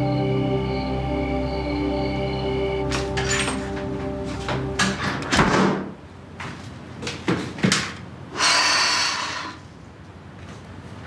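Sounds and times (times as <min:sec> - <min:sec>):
door latch clicks and knocks: 0:04.8 - 0:05.9
rush of noise: 0:08.3 - 0:09.8.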